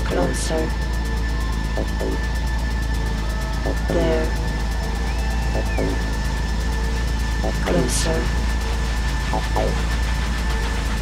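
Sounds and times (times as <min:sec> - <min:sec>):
techno music: 0:00.0 - 0:11.0.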